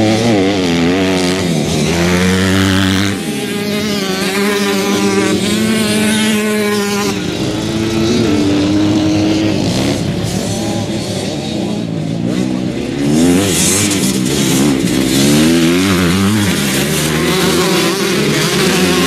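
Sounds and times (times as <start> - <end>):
motocross bike engines revving: 0.0 - 19.0.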